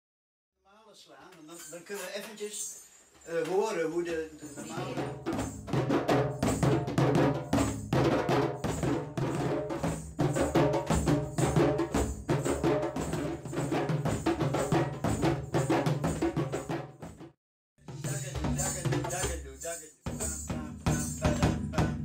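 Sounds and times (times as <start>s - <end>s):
djembes played by hand: 4.6s - 19.4s, 20.1s - 22.0s.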